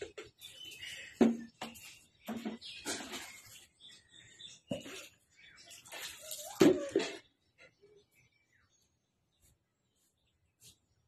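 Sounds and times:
water splashing in bucket: 4.5 - 7.3.

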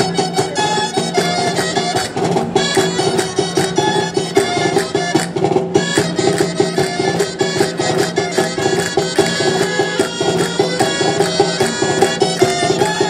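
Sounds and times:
folk dance music: 0.0 - 13.0.

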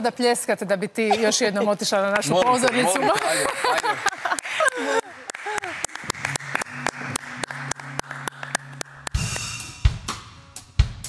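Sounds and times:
hands clapping: 2.1 - 10.0.

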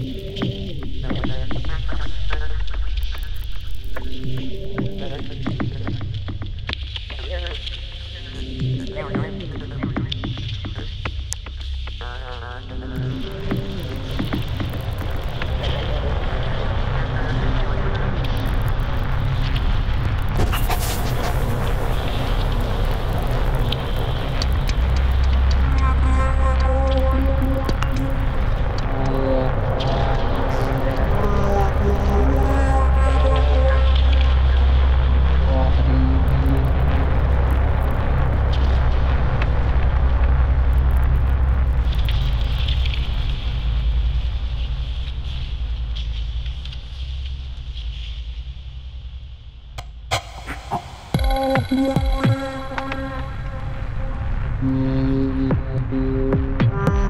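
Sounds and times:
electronic music with heavy bass: 0.0 - 43.9, 49.8 - 57.0
low synth drone: 12.7 - 45.0, 49.7 - 57.0.

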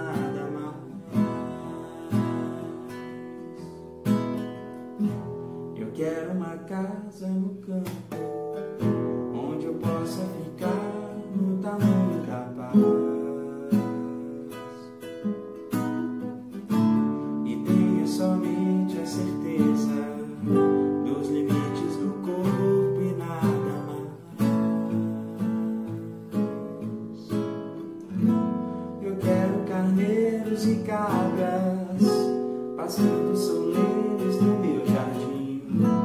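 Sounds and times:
nylon-string guitar chords: 0.0 - 36.0.

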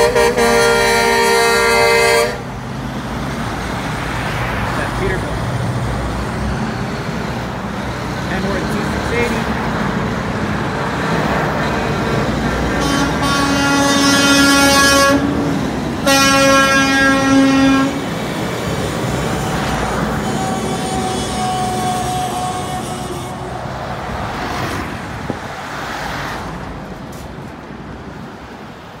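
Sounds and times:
air horn blasts: 0.0 - 2.5, 12.7 - 15.4, 16.0 - 18.1, 19.3 - 23.6
diesel trucks driving past: 0.0 - 29.0.

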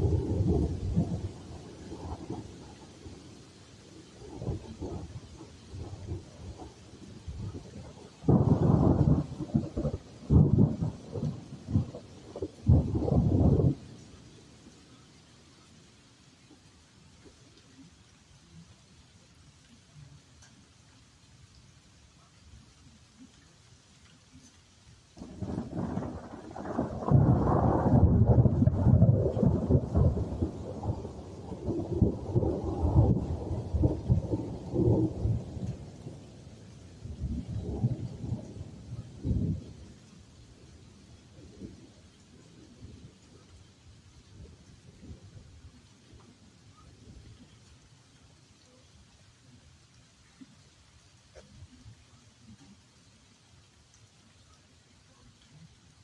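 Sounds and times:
rolling thunder rumble: 0.0 - 3.3, 4.2 - 14.1, 25.2 - 40.0
thunder crack: 25.2 - 31.0.

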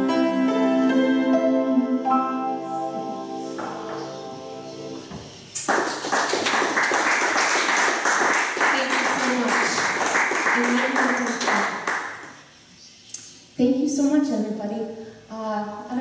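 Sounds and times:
audience applauding: 5.6 - 12.4.

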